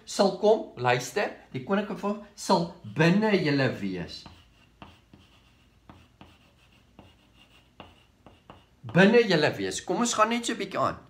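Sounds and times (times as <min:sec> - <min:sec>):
chalk writing on blackboard: 0:04.0 - 0:09.4.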